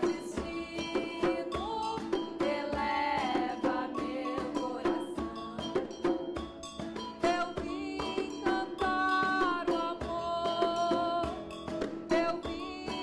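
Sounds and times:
djembe hand drum: 0.0s - 13.0s.

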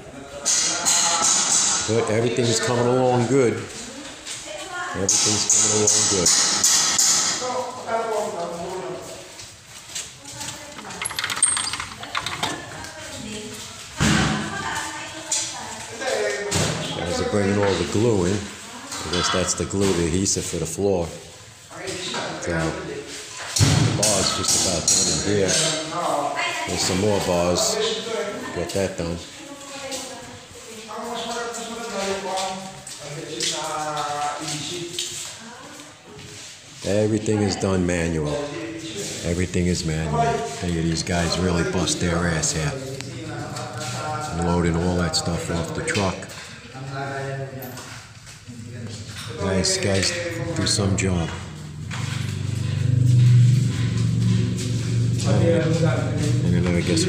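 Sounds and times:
people talking: 12.1s - 23.1s, 36.9s - 47.8s, 48.5s - 57.0s.

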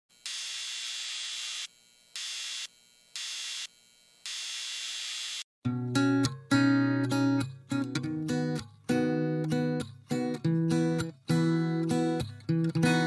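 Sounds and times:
acoustic guitar strumming: 5.7s - 13.0s.

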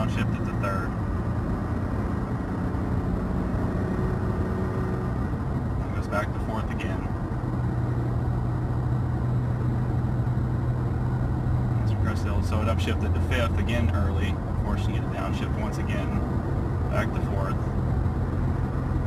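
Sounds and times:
car engine drone inside cab: 0.0s - 19.0s.

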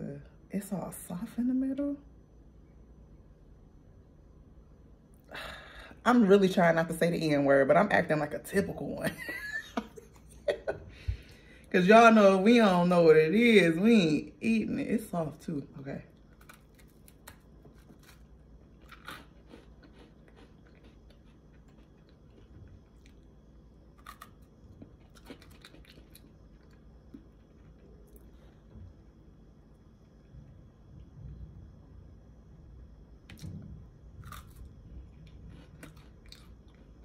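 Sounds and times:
person chewing bread: 16.2s - 29.0s, 34.2s - 37.0s.

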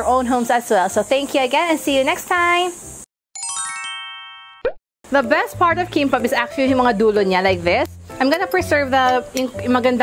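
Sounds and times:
descending chime notes: 3.4s - 4.8s.

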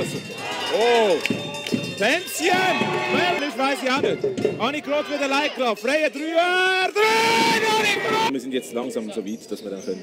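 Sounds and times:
man shouting excitedly: 2.2s - 4.0s, 4.7s - 8.3s.

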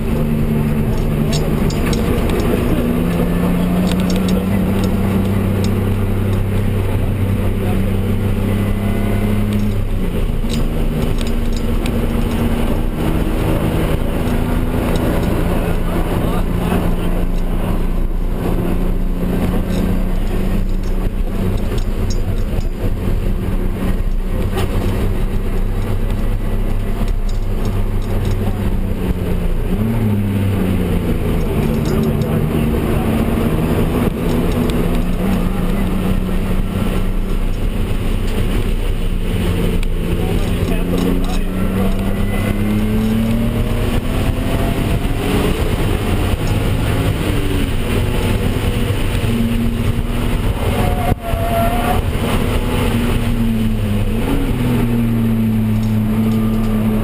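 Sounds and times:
car engine revving: 0.0s - 57.0s
road and tyre noise: 0.0s - 57.0s.

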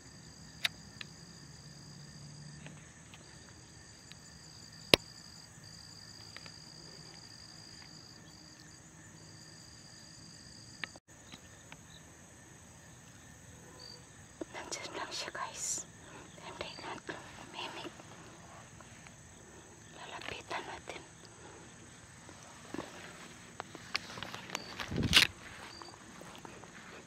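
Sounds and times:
insects trilling: 0.0s - 27.0s.

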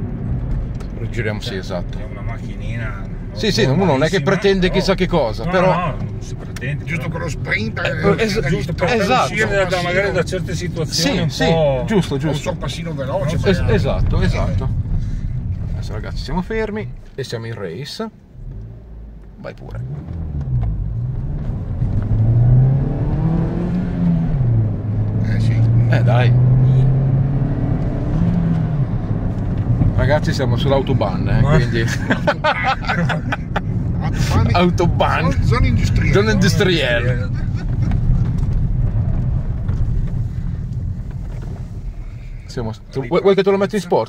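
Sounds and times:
car engine accelerating: 0.0s - 44.0s.

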